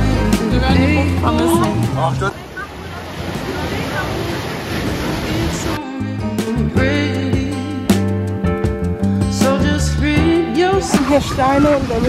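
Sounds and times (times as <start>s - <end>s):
waves breaking on rocks: 1.9s - 5.8s, 10.9s - 12.0s.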